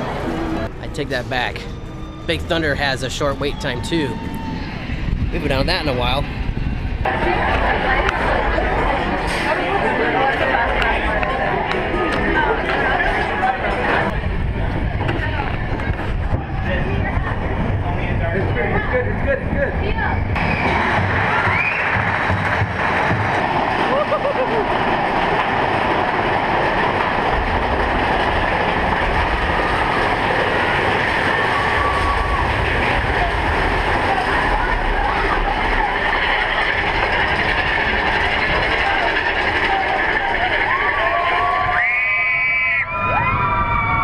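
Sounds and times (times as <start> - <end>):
roller coaster rumble and clatter: 0.0 - 44.0.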